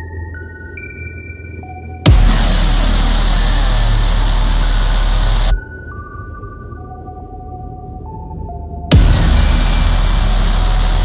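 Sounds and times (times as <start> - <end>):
distorted bass-heavy electronic music: 2.1 - 5.6, 8.9 - 11.0
low rumble: 2.1 - 5.6, 8.9 - 11.0.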